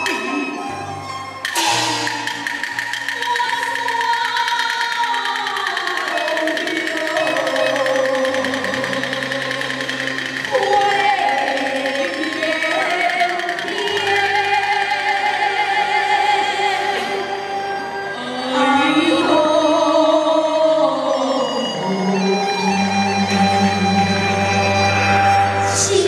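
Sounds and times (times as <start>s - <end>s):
instrumental accompaniment: 0.0s - 26.0s
person singing wavering line: 3.1s - 24.9s.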